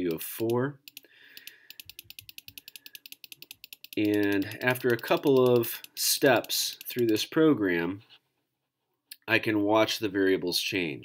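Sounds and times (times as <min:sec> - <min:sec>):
computer mouse clicking rapidly: 0:00.4 - 0:07.2.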